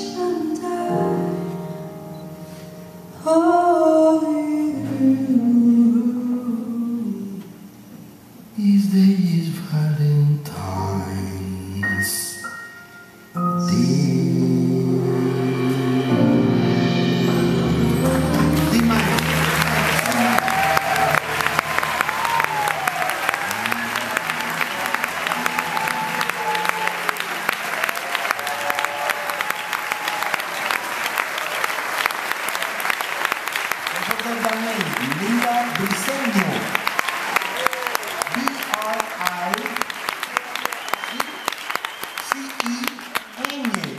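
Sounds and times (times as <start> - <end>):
audience applauding: 17.9 - 43.9
voices calling out and cheering: 18.5 - 30.8.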